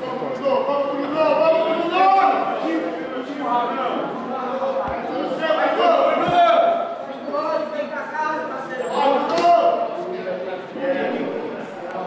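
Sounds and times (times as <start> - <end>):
men talking and calling out: 0.0 - 11.8.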